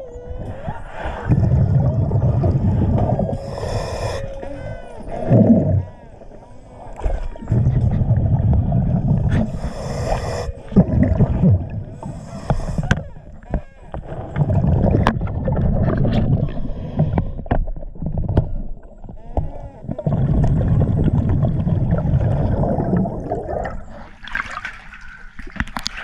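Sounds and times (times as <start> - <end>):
air bubbles gurgling underwater: 1.1 - 4.1, 5.1 - 6.3, 6.9 - 13.0, 14.0 - 17.2, 19.8 - 24.6
regulator inhalation hiss: 3.3 - 4.4, 9.4 - 10.7, 12.0 - 13.0
water splashing and trickling: 20.6 - 26.0.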